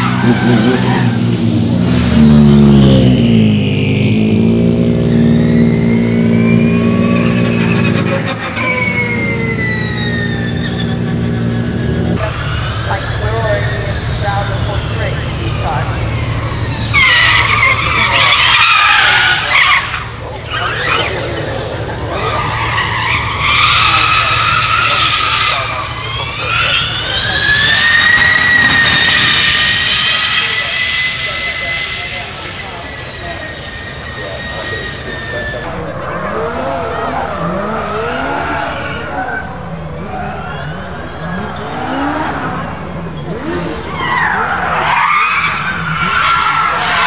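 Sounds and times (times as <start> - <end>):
low engine drone: 0.0 - 44.0
electric car drivetrain whine: 0.0 - 47.0.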